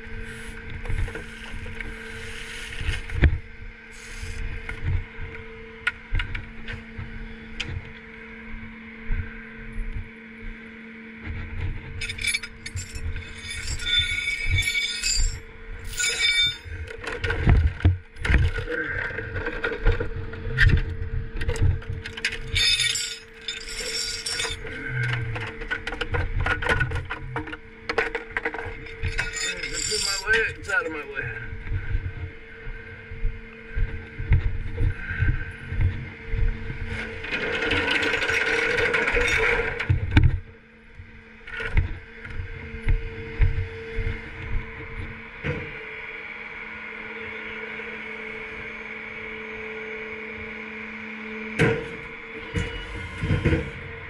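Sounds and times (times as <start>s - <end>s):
tow chain clanking and rattling: 12.0s - 17.7s, 21.6s - 31.1s, 37.0s - 40.1s.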